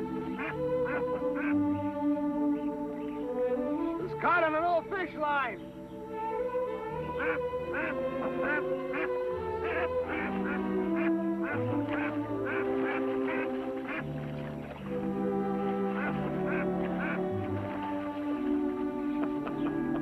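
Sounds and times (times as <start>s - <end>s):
goose honking: 0.0s - 5.6s, 6.6s - 20.0s
background music with held notes: 0.0s - 20.0s.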